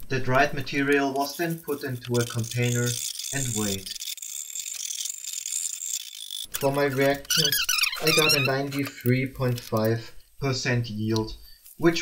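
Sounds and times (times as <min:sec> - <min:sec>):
metal spatula scraping glass: 0:01.6 - 0:09.9.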